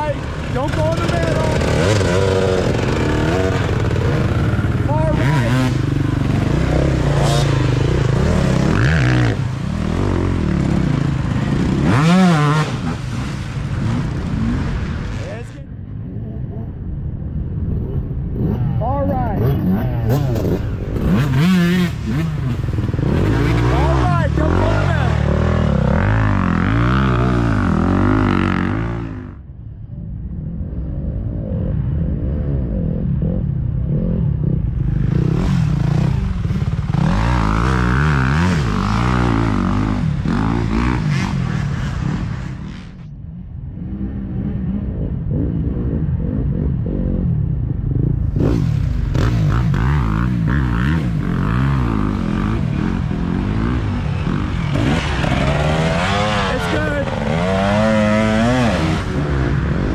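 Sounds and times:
dirt bike engines revving: 0:00.0 - 0:59.9.

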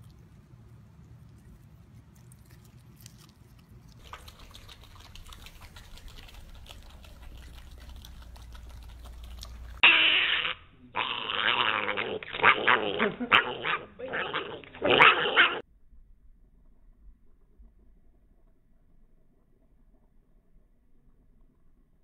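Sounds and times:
piglet grunting and squealing: 0:04.0 - 0:15.6
low hum: 0:13.9 - 0:22.0.

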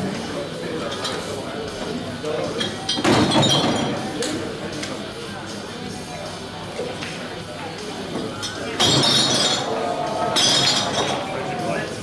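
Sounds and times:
pool balls clacking: 0:08.8 - 0:12.0.

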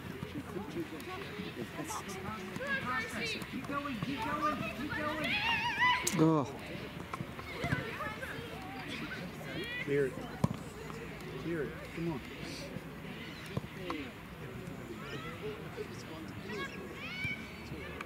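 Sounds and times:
girls shouting and calling: 0:01.2 - 0:06.3, 0:07.3 - 0:10.1.

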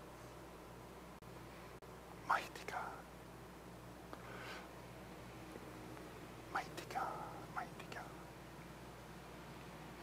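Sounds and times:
low steady hum: 0:00.0 - 0:10.0
person whispering: 0:02.2 - 0:03.1, 0:06.5 - 0:08.3.

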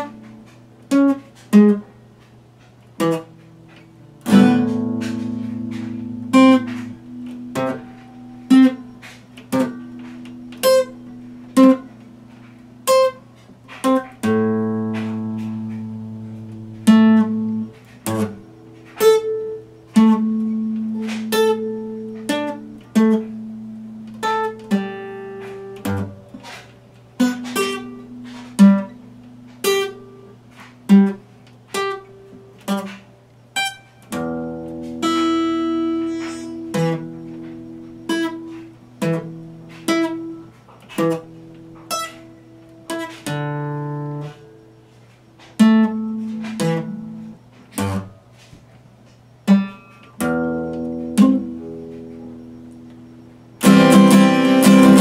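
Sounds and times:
acoustic guitar plucked slowly: 0:00.0 - 0:55.0.

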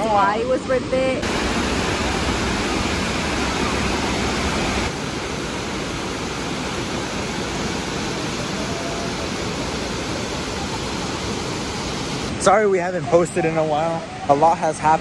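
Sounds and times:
waterfall roaring: 0:00.0 - 0:15.0.

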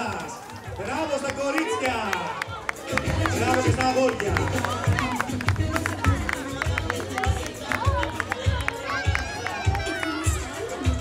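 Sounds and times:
street crowd chatter: 0:00.0 - 0:11.0
music with steady bass beat: 0:02.5 - 0:11.0.

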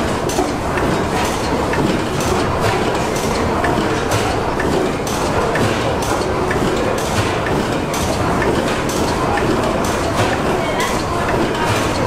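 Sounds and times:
gas engine rhythmic clatter: 0:00.0 - 0:12.0.

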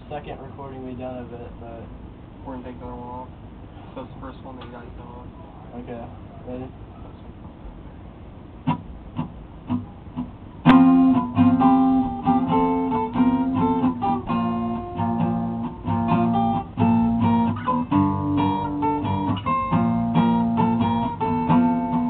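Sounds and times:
acoustic guitar strumming chords: 0:08.6 - 0:22.0.

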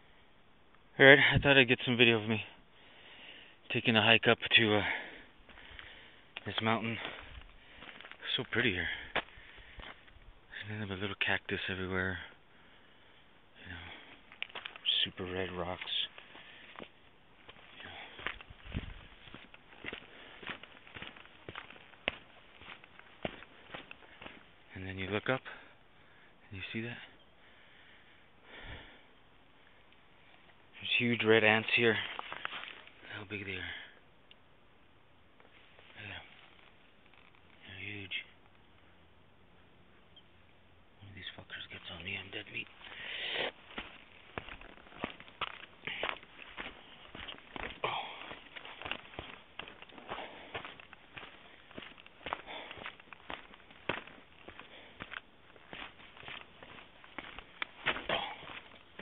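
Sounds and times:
faint steady hiss: 0:00.0 - 0:59.0
breath close to microphone: 0:02.8 - 0:03.6, 0:04.8 - 0:06.3, 0:08.8 - 0:10.1, 0:16.2 - 0:16.8, 0:17.8 - 0:18.9, 0:27.4 - 0:29.9, 0:42.8 - 0:43.6, 0:47.8 - 0:48.4, 0:50.1 - 0:50.6, 0:52.4 - 0:52.9
footsteps on rocky dirt trail: 0:04.6 - 0:10.3, 0:13.8 - 0:25.7, 0:31.3 - 0:33.1, 0:41.6 - 0:59.0.

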